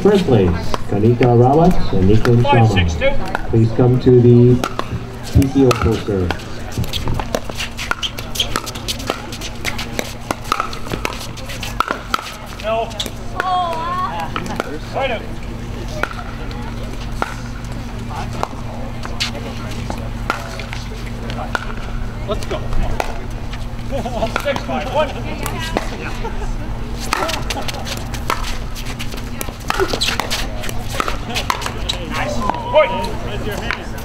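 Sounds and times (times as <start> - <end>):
faint voices: 0.0 - 34.0
steady low hum: 0.0 - 34.0.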